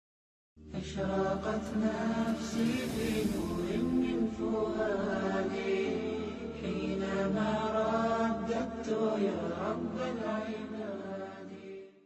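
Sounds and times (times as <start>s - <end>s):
low steady drone: 0.7s - 9.0s
layered chanting voices: 0.7s - 12.0s.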